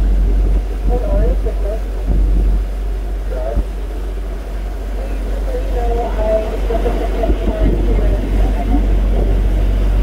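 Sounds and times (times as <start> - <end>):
boat engine low rumble: 0.0 - 10.0
faint voices: 4.7 - 9.6.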